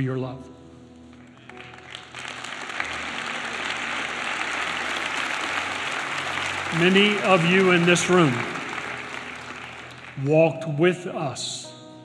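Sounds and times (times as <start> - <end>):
audience applauding: 1.2 - 10.8.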